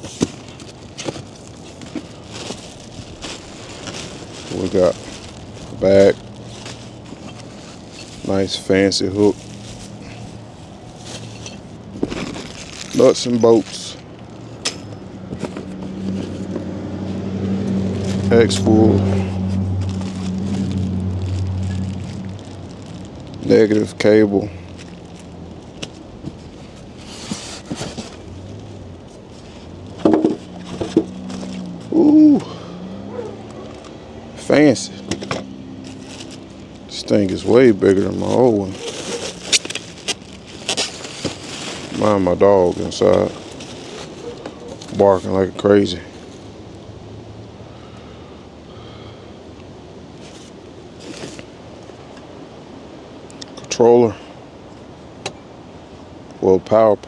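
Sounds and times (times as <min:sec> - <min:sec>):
plastic packaging rustling: 0:00.0 - 0:16.7, 0:18.0 - 0:32.0, 0:35.0 - 0:45.3.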